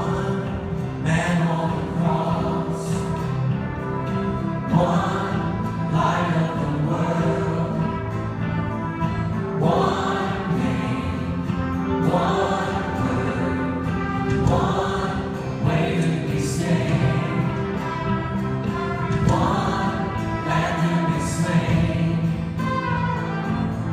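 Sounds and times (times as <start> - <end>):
choir singing gospel song: 0.0 - 23.9
live band accompaniment: 0.0 - 23.9.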